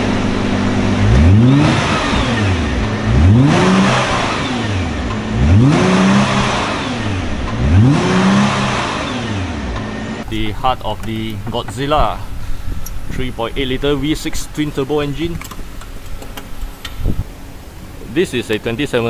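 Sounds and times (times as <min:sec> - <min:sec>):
car engine idling and revving: 0:00.0 - 0:19.0.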